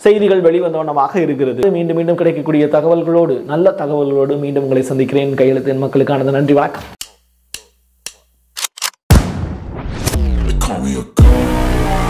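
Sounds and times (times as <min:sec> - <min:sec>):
short sharp clicks: 0:07.0 - 0:09.0.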